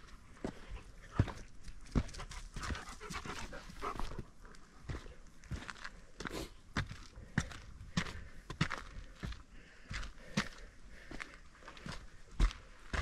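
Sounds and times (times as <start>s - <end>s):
footsteps on dirt trail: 0.0s - 13.0s
breathing: 0.3s - 1.1s, 5.0s - 13.0s.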